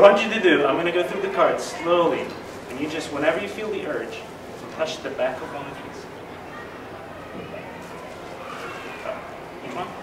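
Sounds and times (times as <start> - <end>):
room hiss: 0.0 - 10.0
soft faint voices: 0.0 - 10.0.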